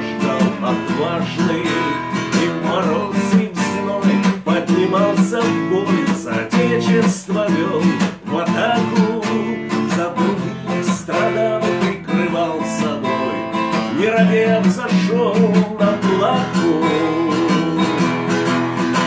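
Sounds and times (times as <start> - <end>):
acoustic guitar strumming: 0.0 - 19.0
man singing folk song: 0.0 - 19.0.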